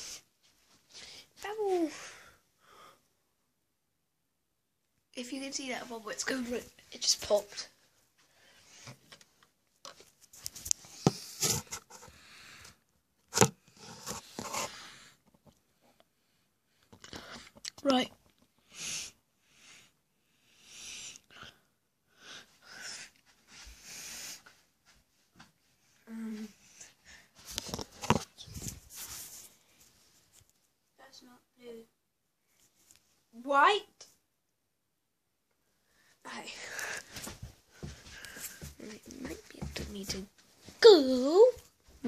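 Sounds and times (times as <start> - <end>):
phone handling rustling and scraping: 13.3 - 14.7, 27.5 - 28.8
rubbing on phone: 13.4 - 14.9.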